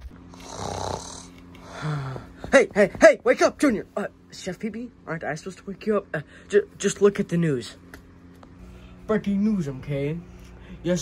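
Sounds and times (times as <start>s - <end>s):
person snoring: 0.3s - 2.4s.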